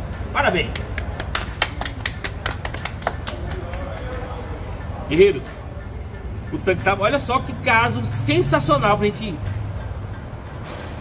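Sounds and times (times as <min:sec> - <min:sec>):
hands clapping: 0:00.6 - 0:04.9.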